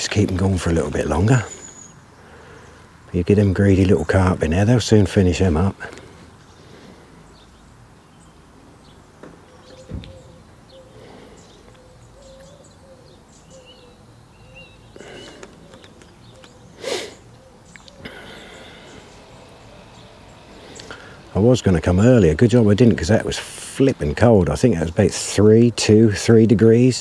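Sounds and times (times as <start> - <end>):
faint bird calls: 0.9 - 3.0, 4.9 - 23.0
low wavering hoot: 9.4 - 21.3.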